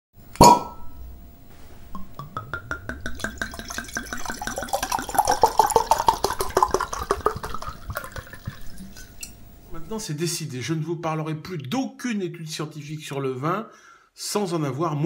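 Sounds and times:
glass clinking: 0.4 - 1.0, 2.0 - 9.4
wine glugging while poured: 1.9 - 9.4.

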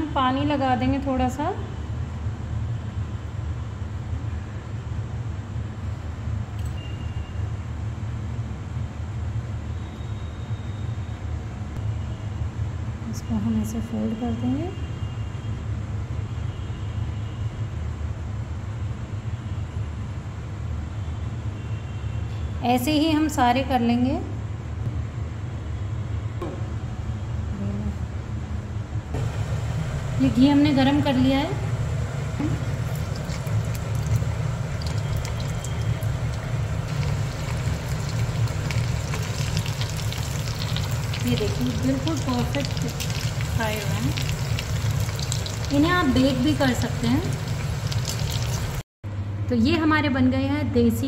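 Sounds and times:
low rumbling hum with hiss: 26.4 - 51.0.

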